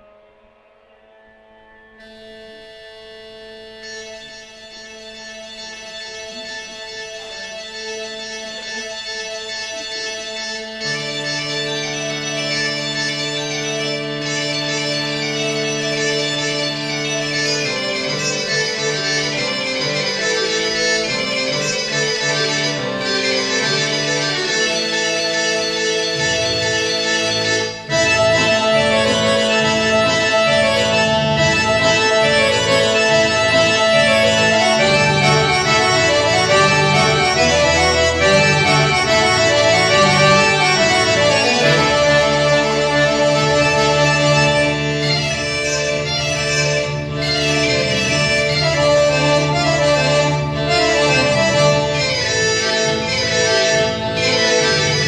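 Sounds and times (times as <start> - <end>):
piano accordion playing slow chords: 1.5 - 55.0.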